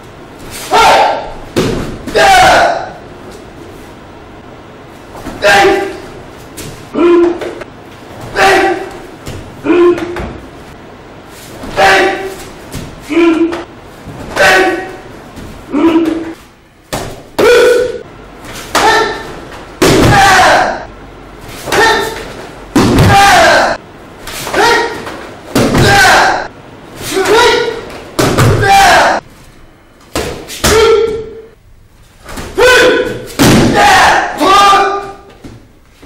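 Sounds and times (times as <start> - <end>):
martial arts shout: 0.6 - 1.4, 2.0 - 3.0, 5.3 - 6.1, 6.9 - 7.6, 8.3 - 9.0, 9.6 - 10.2, 11.6 - 12.4, 13.0 - 13.7, 14.3 - 15.0, 15.7 - 16.4, 17.4 - 18.1, 18.7 - 20.9, 21.6 - 23.8, 24.4 - 29.2, 30.6 - 31.5, 32.5 - 35.3
sharp thud: 33.1 - 33.8.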